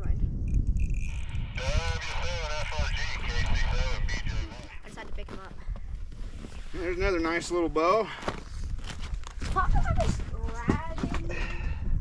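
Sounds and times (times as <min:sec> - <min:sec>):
wind rumble on microphone: 0:00.0 - 0:12.0
high-pitched wordless voice: 0:09.4 - 0:11.6.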